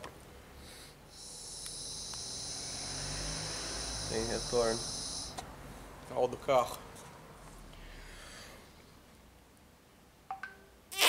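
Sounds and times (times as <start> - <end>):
air hissing through a hose: 0.6 - 5.4.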